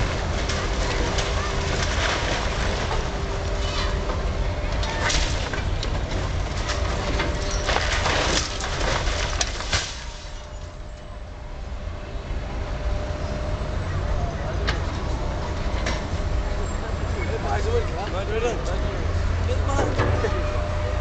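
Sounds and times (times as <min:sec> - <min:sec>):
breaking timber cracks: 0:00.0 - 0:03.8, 0:04.8 - 0:10.7
falling debris: 0:00.0 - 0:10.8
excavator heavy rumble: 0:00.0 - 0:21.0.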